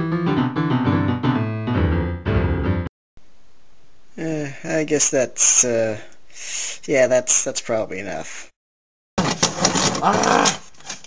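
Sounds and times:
man making wordless sounds: 4.1 - 6.2.

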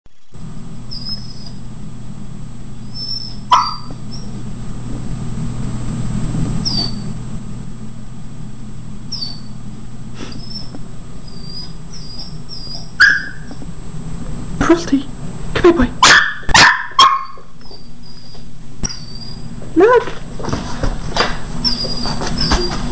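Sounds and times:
steady low hum: 0.1 - 22.9
puppy whining: 0.9 - 1.7, 2.8 - 4.4, 6.6 - 7.2, 9.1 - 9.6, 10.2 - 13.6, 16.5 - 20.0, 21.6 - 22.9
puppy barking: 3.0 - 4.3, 11.3 - 13.6, 16.0 - 17.9.

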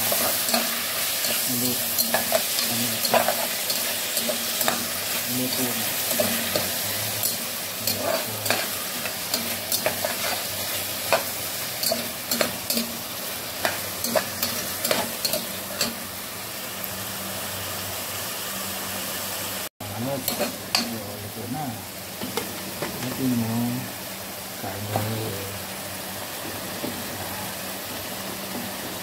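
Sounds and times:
vegetables sizzling in oil: 0.0 - 29.0.

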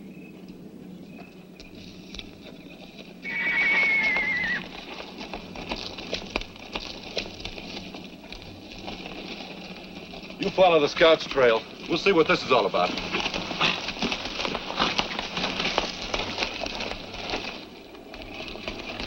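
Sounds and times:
hooves clopping on rocky trail: 0.0 - 19.0
horse whinnying: 3.2 - 4.8.

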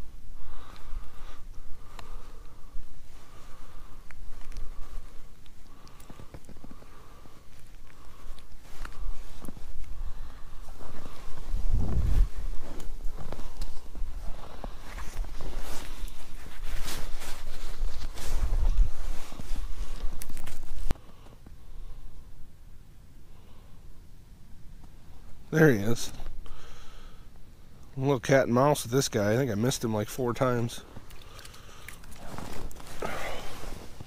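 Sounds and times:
footsteps crunching in snow: 2.6 - 20.9, 32.2 - 34.0.

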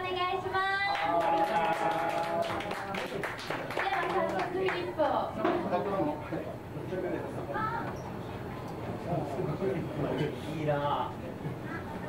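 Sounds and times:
audience clapping: 0.9 - 4.9.

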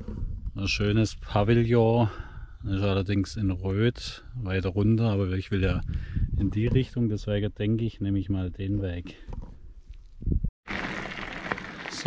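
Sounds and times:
wind buffeting microphone: 0.0 - 2.8, 5.4 - 7.4, 10.2 - 10.5.

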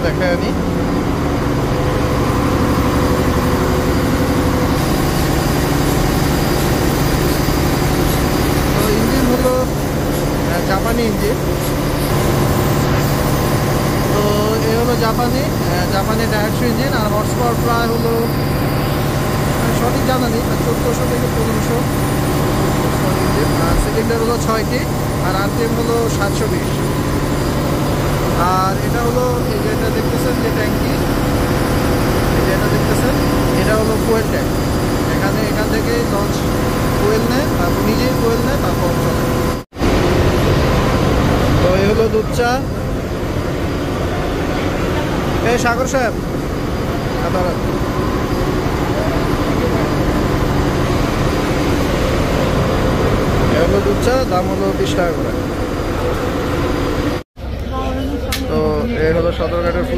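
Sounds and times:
boat diesel engine droning: 0.0 - 59.9.

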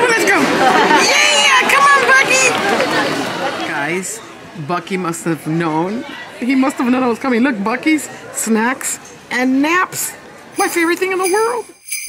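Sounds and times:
voices talking and chattering: 0.0 - 11.9.

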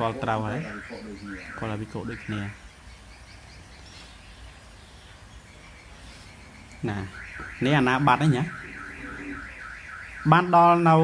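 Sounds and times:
warbling electronic alarm tone: 0.4 - 2.6, 6.8 - 10.8.

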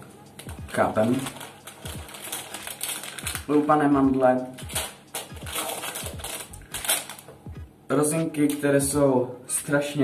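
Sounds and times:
plastic packets crinkling: 0.4 - 7.4.

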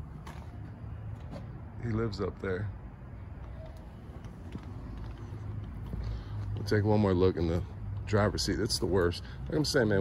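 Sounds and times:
footsteps on pavement: 0.0 - 1.8, 3.2 - 10.0.

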